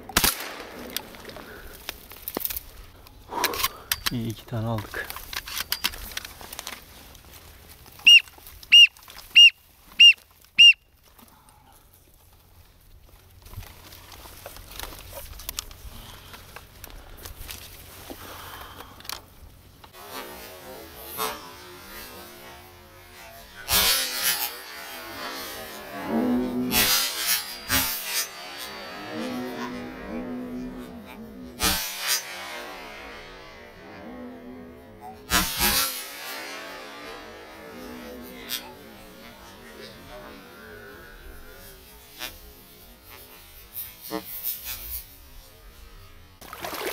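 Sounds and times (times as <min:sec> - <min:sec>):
rasping duck calls: 0:08.0 - 0:10.8, 0:23.6 - 0:32.1
high whistled calls: 0:08.0 - 0:10.9.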